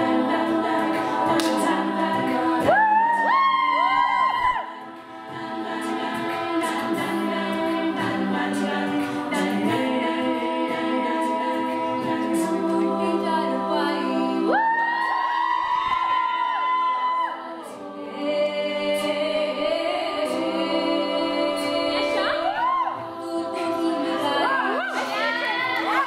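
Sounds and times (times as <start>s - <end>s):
women singing a cappella: 0.0s - 26.0s.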